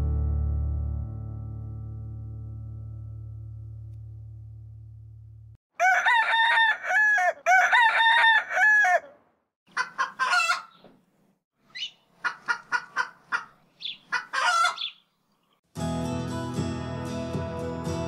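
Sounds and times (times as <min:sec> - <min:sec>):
chickens pulsing calls: 0:05.8 - 0:11.0, 0:11.7 - 0:15.1
chicken clucks: 0:09.7 - 0:11.0, 0:11.8 - 0:15.0.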